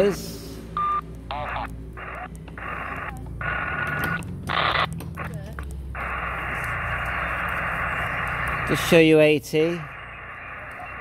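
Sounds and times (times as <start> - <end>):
radio static hiss: 0.0 - 11.0
snatches of radio stations: 0.0 - 11.0
steady radio whistle: 6.0 - 11.0.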